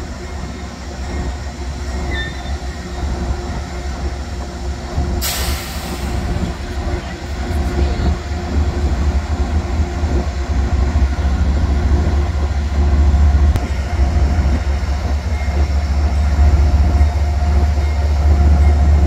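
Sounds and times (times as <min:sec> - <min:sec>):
diesel locomotive engine rumbling: 0:00.0 - 0:19.0
sharp hiss: 0:05.2 - 0:06.4.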